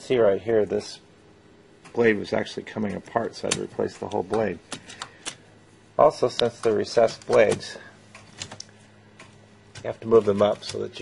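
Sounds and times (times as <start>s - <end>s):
faint steady hum: 0.0s - 11.0s
light clicks and taps: 2.9s - 5.4s, 6.3s - 10.9s.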